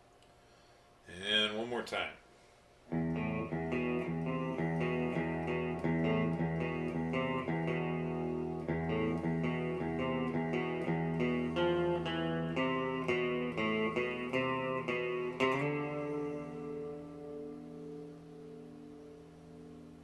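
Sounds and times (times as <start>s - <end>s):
clean electric guitar riff: 2.9s - 20.0s.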